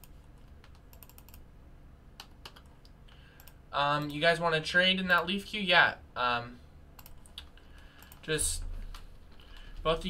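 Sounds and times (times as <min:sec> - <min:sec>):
typing on computer keyboard: 0:00.0 - 0:01.4
low steady room hum: 0:00.0 - 0:10.0.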